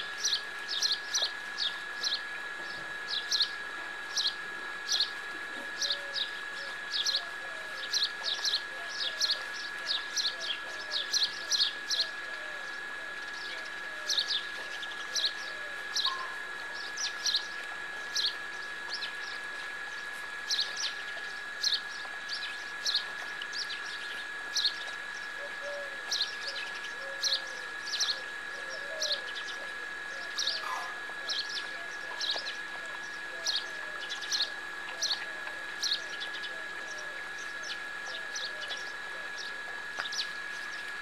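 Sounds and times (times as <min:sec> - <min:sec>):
small birds chirping: 0:13.3 - 0:25.4, 0:30.2 - 0:40.9.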